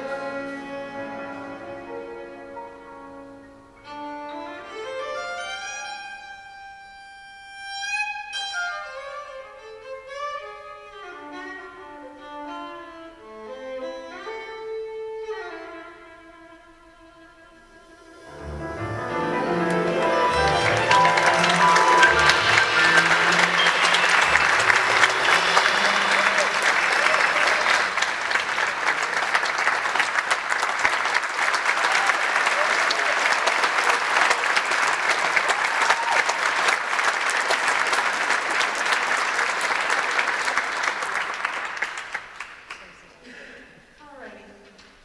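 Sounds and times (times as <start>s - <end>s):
jazz band playing: 0.0s - 3.4s, 18.0s - 27.8s
audience applauding: 18.2s - 43.3s.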